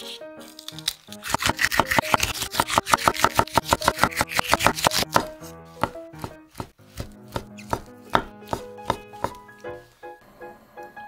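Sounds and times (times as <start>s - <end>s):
knife chopping on wooden board: 1.2s - 9.4s.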